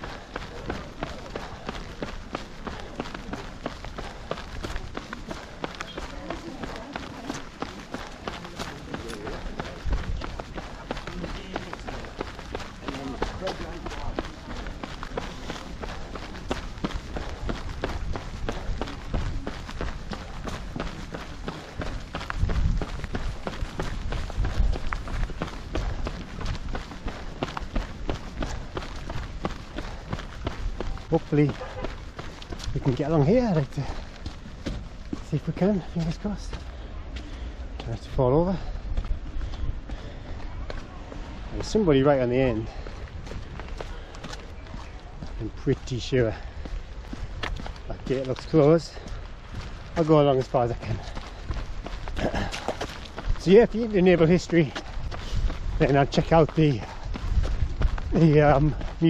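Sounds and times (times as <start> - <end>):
low rumbles: 0.0 - 59.0
running footsteps on wet stone: 0.0 - 59.0.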